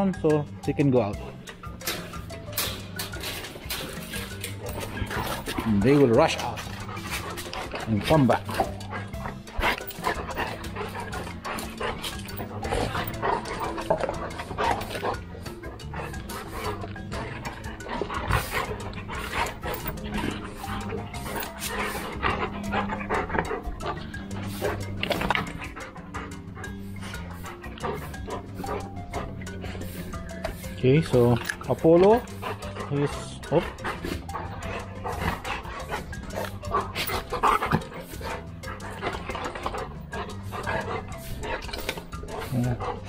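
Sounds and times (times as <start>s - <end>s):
background music low notes: 0.0s - 43.0s
dogs panting: 0.0s - 43.0s
dogs scuffling: 1.5s - 43.0s.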